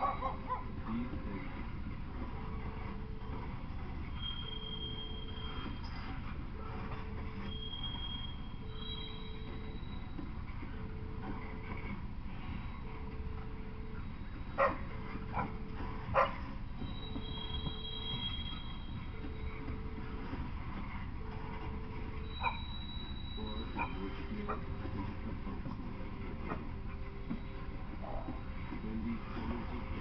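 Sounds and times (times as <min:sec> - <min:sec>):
dog barking: 0:00.0 - 0:00.7, 0:14.6 - 0:16.5, 0:22.4 - 0:22.6
freight train rumbling past: 0:00.0 - 0:30.0
faint repeating beep: 0:03.2 - 0:06.1, 0:07.4 - 0:10.8, 0:16.8 - 0:20.2.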